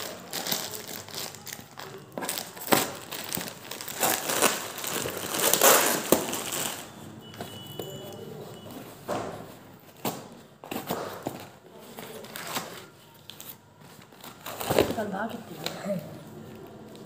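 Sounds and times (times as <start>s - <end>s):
plastic mailer bag crinkling: 0.0s - 7.2s.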